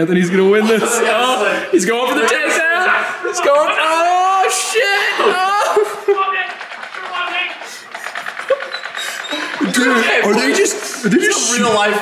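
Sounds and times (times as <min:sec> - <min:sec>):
toy blaster firing rattle: 0:05.6 - 0:12.0.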